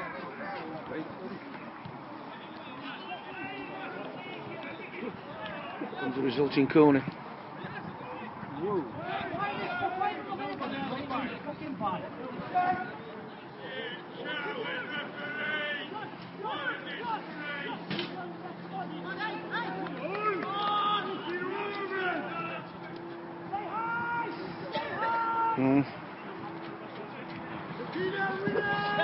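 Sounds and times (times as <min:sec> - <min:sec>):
distant people shouting: 0:01.8 - 0:06.3, 0:07.6 - 0:26.5, 0:27.2 - 0:29.0
loud shout: 0:08.0 - 0:10.5, 0:13.6 - 0:22.7, 0:23.5 - 0:25.8, 0:27.9 - 0:29.0.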